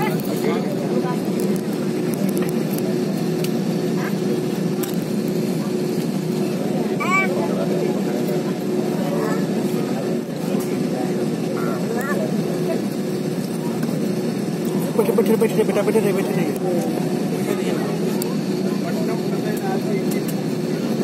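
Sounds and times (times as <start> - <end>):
jet engines humming: 0.0 - 21.0.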